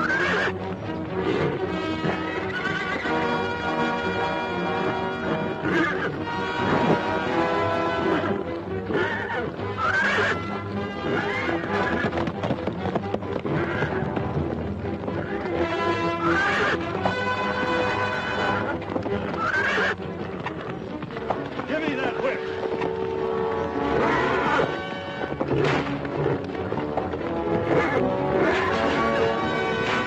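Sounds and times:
background music: 0:00.0 - 0:30.0
horse whinnying: 0:00.0 - 0:30.0.

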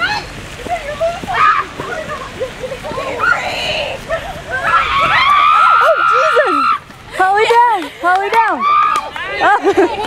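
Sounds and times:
people shouting excitedly: 0:02.9 - 0:06.9, 0:08.4 - 0:09.4.

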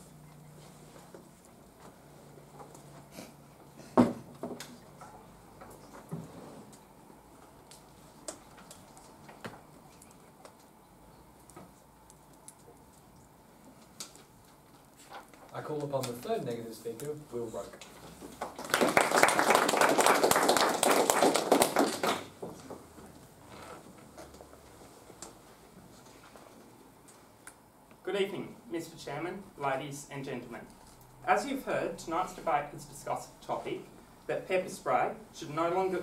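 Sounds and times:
people clapping: 0:18.3 - 0:22.5.

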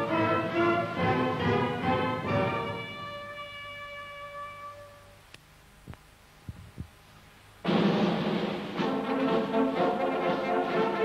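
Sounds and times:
brass music: 0:00.0 - 0:05.2, 0:07.6 - 0:11.0
faint clicks: 0:05.2 - 0:06.1.

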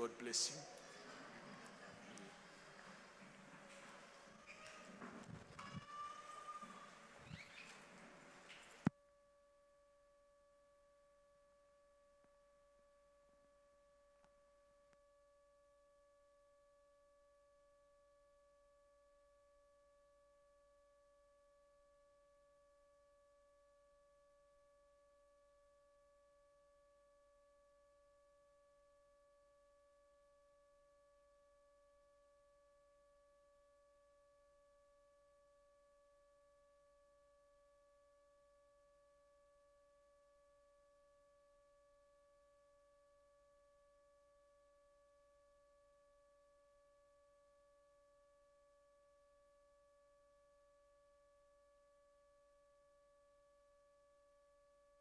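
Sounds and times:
faint steady electronic tone: 0:08.8 - 0:55.0.

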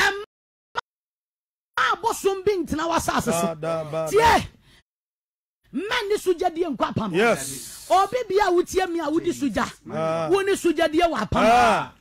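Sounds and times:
woman praying fervently: 0:01.8 - 0:04.6, 0:05.7 - 0:11.9.

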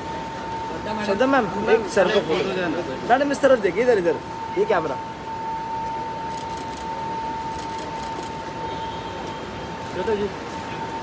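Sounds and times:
busy terminal background noise: 0:00.0 - 0:11.0
constant high-pitched tone: 0:00.0 - 0:11.0.

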